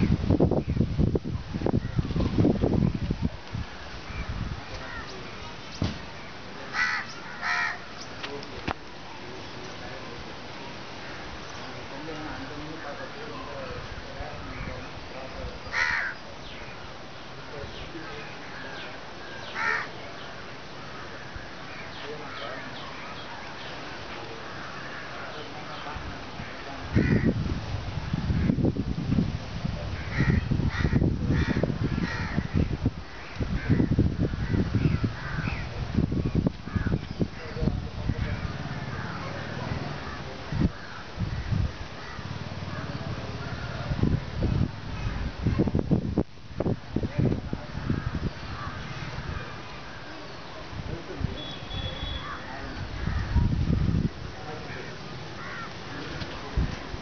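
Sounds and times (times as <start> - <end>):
crows cawing: 4.1 - 5.1, 6.7 - 8.0, 15.7 - 16.2, 18.4 - 20.0, 20.8 - 22.8, 24.4 - 25.4, 26.5 - 27.4, 30.0 - 35.7, 36.6 - 37.0, 38.3 - 43.8, 47.8 - 50.1, 51.9 - 53.4, 54.6 - 56.1
bird calling: 6.7 - 8.2, 51.4 - 53.5.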